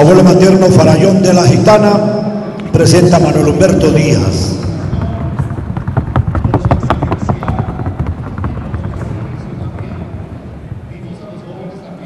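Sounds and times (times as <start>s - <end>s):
hoofbeats on wooden board: 3.6s - 10.9s.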